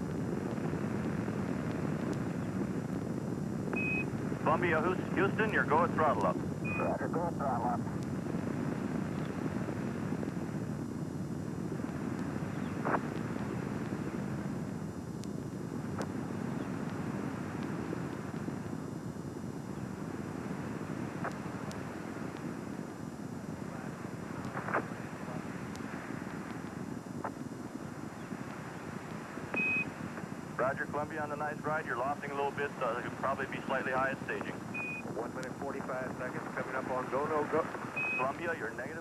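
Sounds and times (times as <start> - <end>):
distant rocket engine rumble: 0.0 - 39.0.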